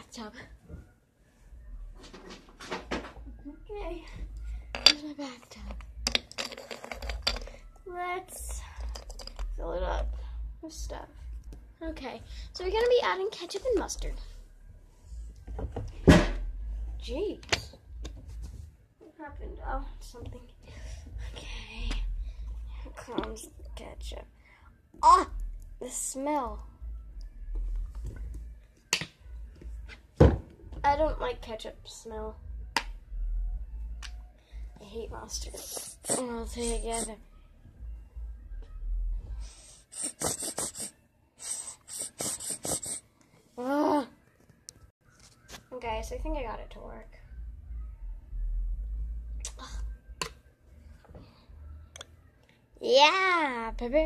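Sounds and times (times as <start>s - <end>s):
squeeze bottle sputtering squirts: 39.9s - 43.0s
low rumble: 46.2s - 50.2s.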